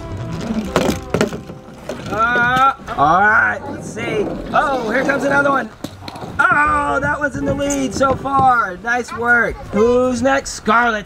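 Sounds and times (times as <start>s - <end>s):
sharp knocks on slide walls: 4.0s - 9.0s.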